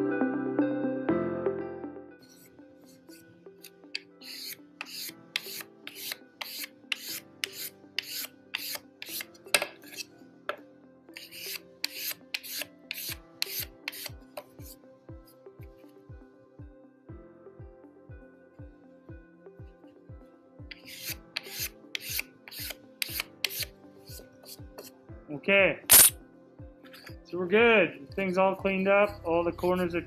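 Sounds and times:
soft background music: 0:00.0 - 0:30.0
sandpaper sanding by hand: 0:04.2 - 0:09.2, 0:11.2 - 0:14.1, 0:20.8 - 0:23.7.

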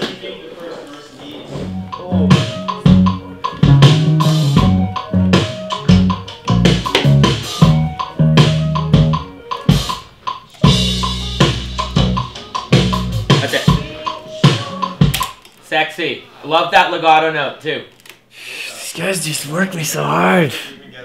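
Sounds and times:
bass guitar: 0:01.7 - 0:09.3, 0:10.6 - 0:13.4
rock drum kit: 0:02.3 - 0:15.2.

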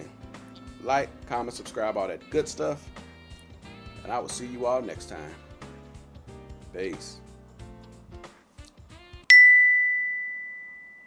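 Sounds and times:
bright bell ding: 0:09.3 - 0:11.0.

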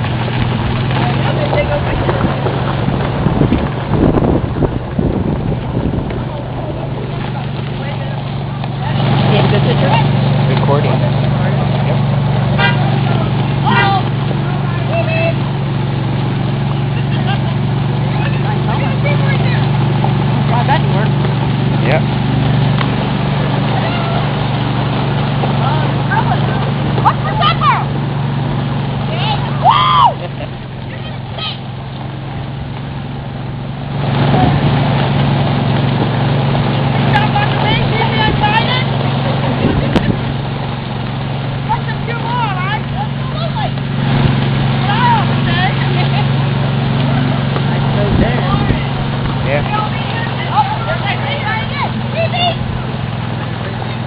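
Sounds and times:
golf cart engine drone: 0:00.0 - 0:54.0
voices of riders: 0:00.0 - 0:54.0
wheels rumbling on gravel: 0:00.0 - 0:54.0.

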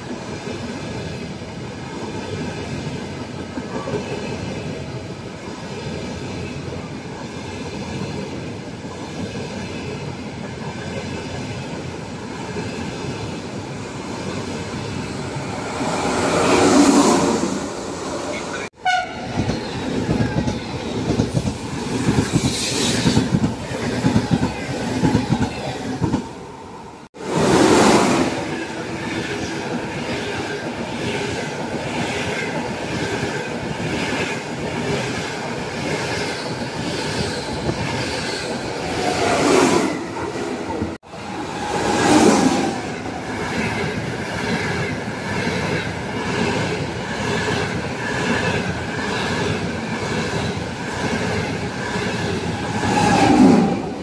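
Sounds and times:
trains passing at speed: 0:00.0 - 0:54.0.

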